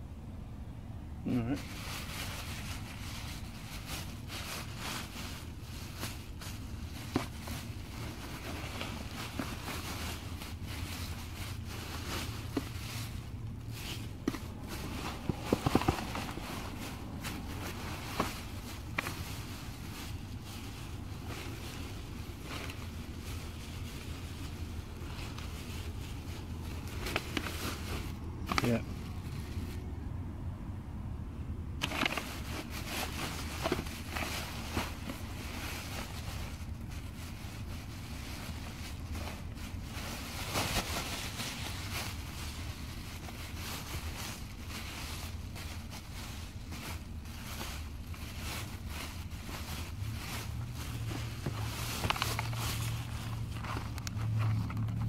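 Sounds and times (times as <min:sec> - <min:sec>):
plastic bags crinkling and rustling: 0:01.5 - 0:29.9, 0:31.8 - 0:55.0.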